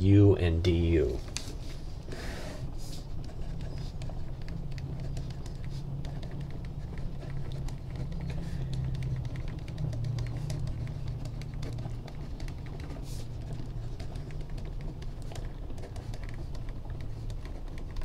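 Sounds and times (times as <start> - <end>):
steady low hum: 0.0 - 18.0
pen scratching on paper: 2.8 - 18.0.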